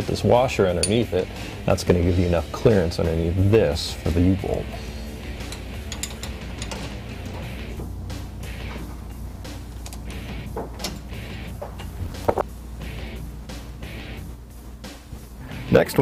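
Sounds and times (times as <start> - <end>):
background music: 0.0 - 16.0
wrench on metal fitting: 0.7 - 1.2, 5.2 - 7.2
light clicks and clinks of tools: 0.8 - 1.1, 5.4 - 7.5.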